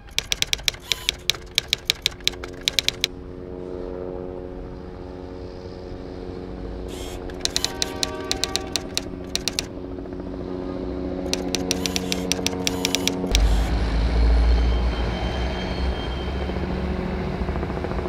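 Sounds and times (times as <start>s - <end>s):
typewriter key clicks: 0.0s - 3.1s, 6.9s - 9.7s, 11.3s - 13.7s.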